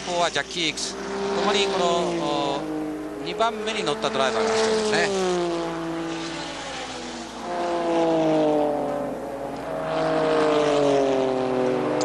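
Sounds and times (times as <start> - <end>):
racing car engine at speed: 0.0 - 12.0.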